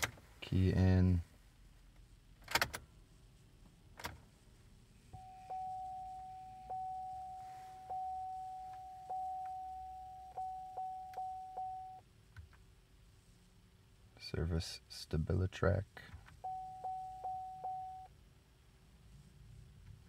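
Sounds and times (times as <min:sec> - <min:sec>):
dashboard warning chime: 0:05.2 - 0:12.0, 0:16.4 - 0:18.1.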